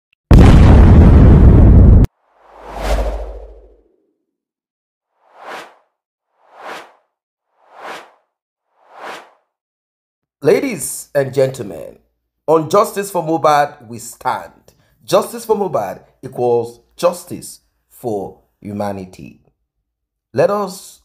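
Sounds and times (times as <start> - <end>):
loud blast of noise: 0.3 - 3.4
whoosh with low rumble: 0.3 - 3.9
short swooshes: 2.4 - 3.9, 5.2 - 9.5.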